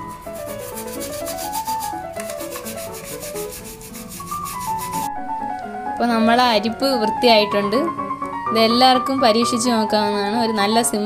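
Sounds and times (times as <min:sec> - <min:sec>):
background music: 0:00.0 - 0:11.0
toothbrush scrubbing plastic mesh: 0:00.1 - 0:05.1.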